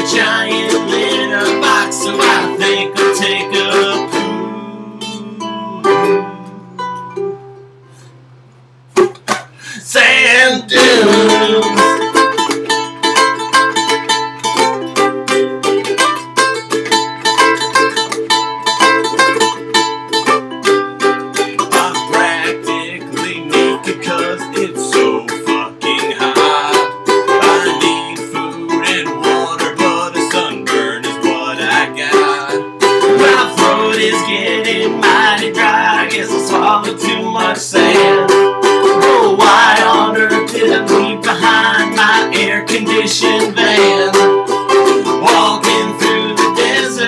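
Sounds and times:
ukuleles strumming: 0.0 - 47.0.

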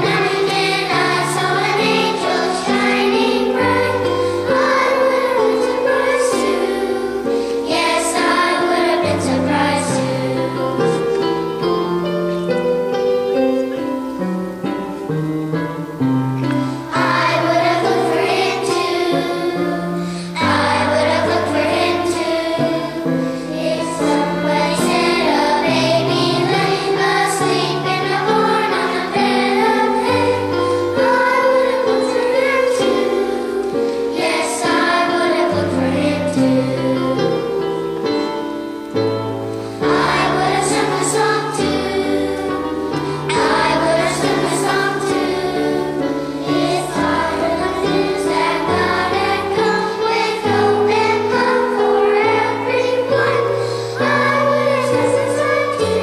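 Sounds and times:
children's choir singing: 0.0 - 56.0
musical accompaniment: 0.0 - 56.0.

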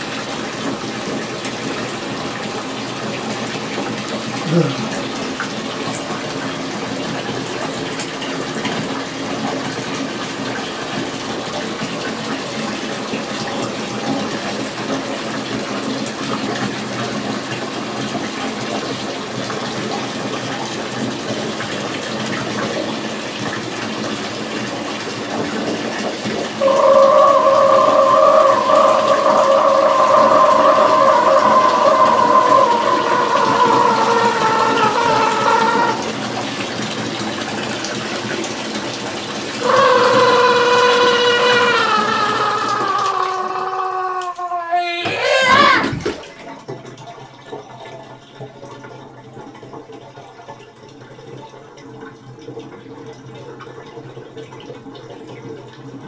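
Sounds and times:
water running into bathtub: 0.0 - 56.0
long pitched tone: 26.6 - 36.1, 39.6 - 43.6.

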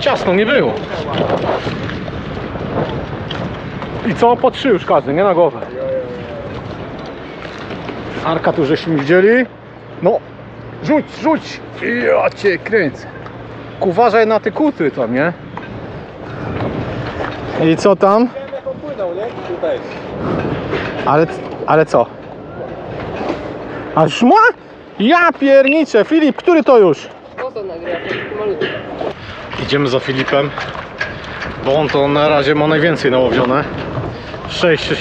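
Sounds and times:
wind noise on microphone: 0.0 - 8.8, 13.1 - 25.0, 27.1 - 35.0.

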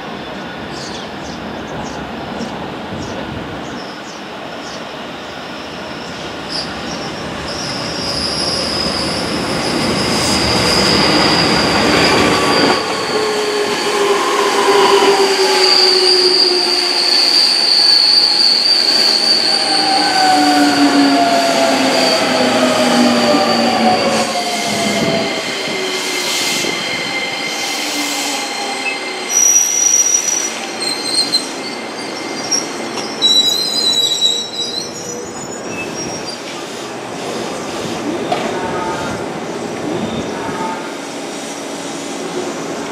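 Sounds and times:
rail noise: 0.0 - 42.9
high wheel squeal: 5.5 - 38.3.

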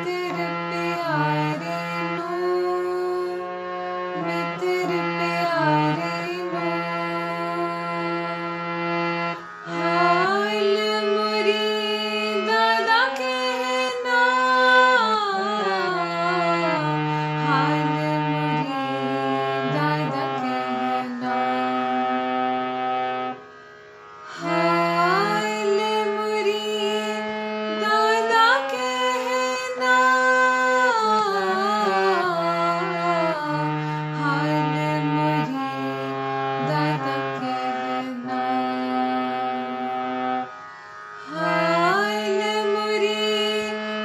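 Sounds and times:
reed harmonium melody: 0.0 - 44.0.

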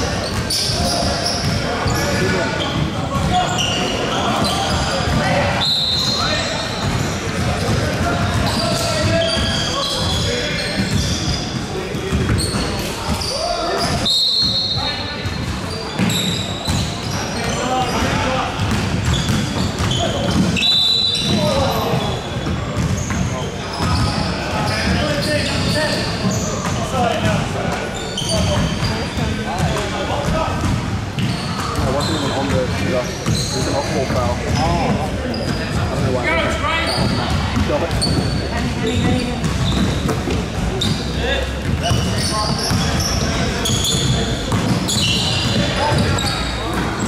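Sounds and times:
sneakers squeaking: 0.0 - 47.0
basketball bouncing on hardwood: 44.0 - 46.0.

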